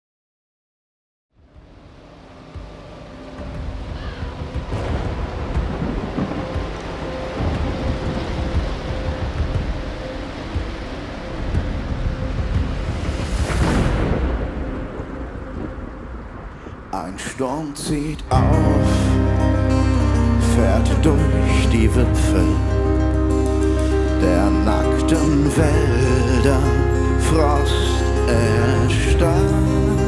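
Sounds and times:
rain hiss: 1.4 - 30.0
rolling thunder: 3.4 - 16.9.

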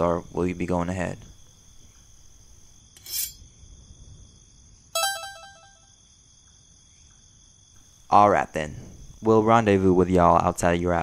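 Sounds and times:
crickets chirring: 0.0 - 11.0
electronic chime: 5.0 - 5.8.

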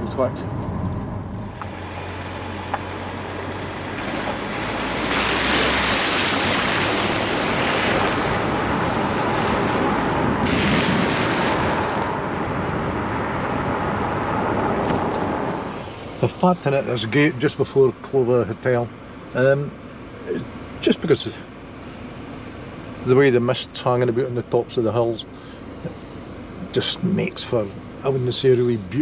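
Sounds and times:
car tyres on wet road: 0.0 - 29.0.

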